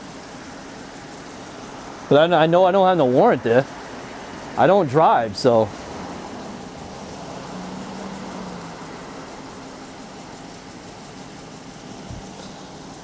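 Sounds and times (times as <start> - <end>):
vehicle engine idling: 0.0 - 13.0.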